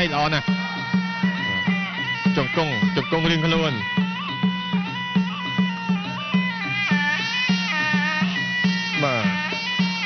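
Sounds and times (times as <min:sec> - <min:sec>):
reed pipe melody: 0:00.0 - 0:10.0
steady drum beat: 0:00.0 - 0:10.0.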